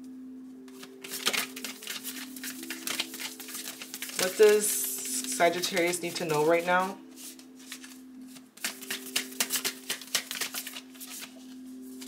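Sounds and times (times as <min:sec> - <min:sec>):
cards being shuffled: 0:00.7 - 0:12.0.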